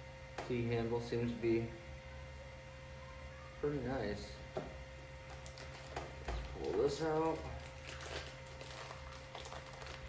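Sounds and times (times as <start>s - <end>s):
plastic bag crinkling: 5.2s - 10.0s.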